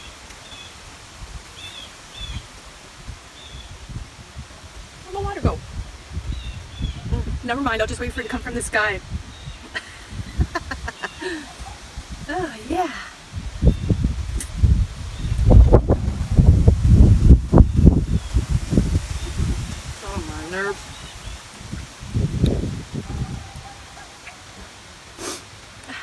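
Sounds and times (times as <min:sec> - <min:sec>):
wind gusting against microphone: 0:00.0 - 0:26.0.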